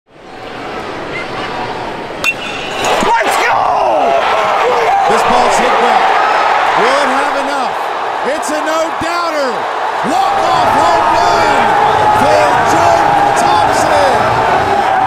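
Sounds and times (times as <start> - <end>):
stadium crowd noise: 0.1 - 15.0
crowd cheering and shouting: 0.3 - 15.0
metal bat hitting ball: 2.2 - 3.2.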